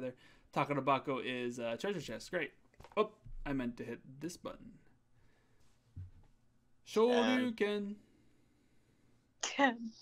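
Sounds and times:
person speaking: 6.9 - 8.0.

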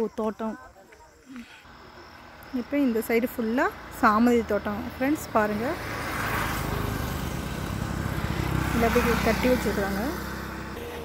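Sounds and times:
vehicle engine passing: 1.6 - 11.0.

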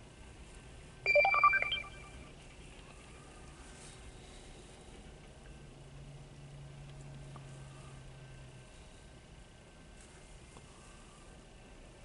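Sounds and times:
rising electronic beeping tones: 1.1 - 2.3.

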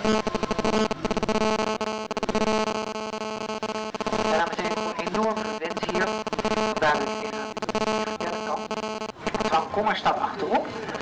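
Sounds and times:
steady buzzing drone: 0.0 - 9.8.

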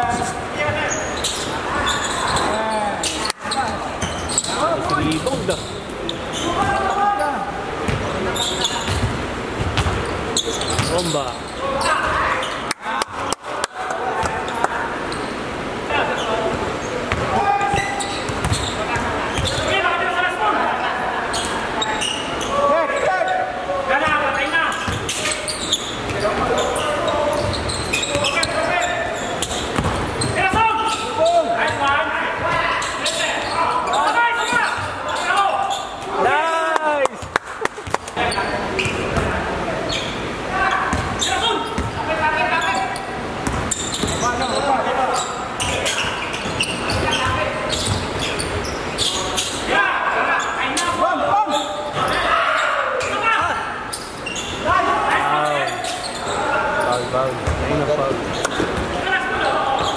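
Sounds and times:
basketball bouncing: 7.9 - 8.1, 8.8 - 10.1, 17.1 - 19.6, 29.7 - 30.6, 40.9 - 42.0, 43.4 - 44.3, 57.4 - 57.7
players shouting: 49.1 - 57.2.

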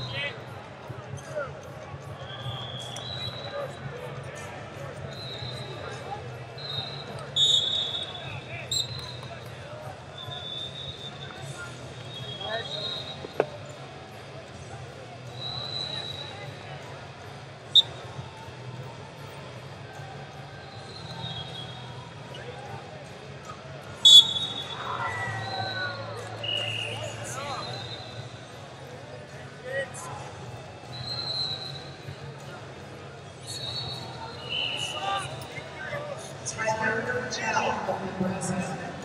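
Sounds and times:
murmur of voices: 0.0 - 39.0
short high whistle tones: 2.2 - 3.7, 6.6 - 9.2, 24.0 - 28.3, 33.5 - 35.5.

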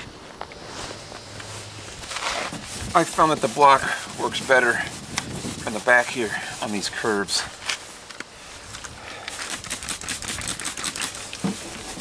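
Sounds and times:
sandpaper scrubbing on metal: 2.2 - 8.0, 9.4 - 12.0.

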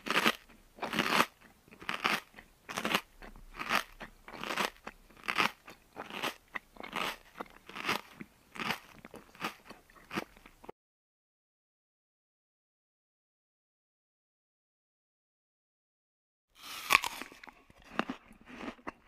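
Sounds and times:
child chewing crunchy food: 0.0 - 10.7, 16.6 - 19.0.

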